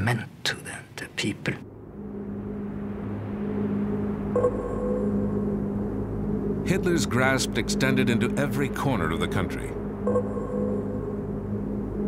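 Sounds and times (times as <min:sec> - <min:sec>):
low engine drone: 0:01.6 - 0:12.0.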